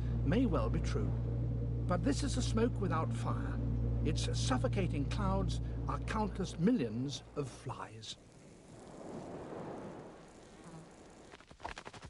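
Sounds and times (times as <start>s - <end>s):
swarm of flies buzzing: 7.8s - 11.6s.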